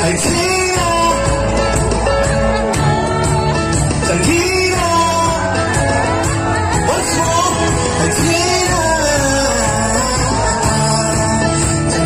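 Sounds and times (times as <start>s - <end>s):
electric guitar: 0.0s - 12.0s
live band playing: 0.0s - 12.0s
person singing: 0.0s - 12.0s.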